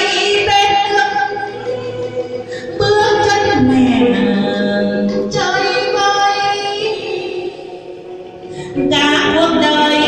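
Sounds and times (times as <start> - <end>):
musical accompaniment: 0.0 - 10.0
person singing slow song: 0.0 - 10.0.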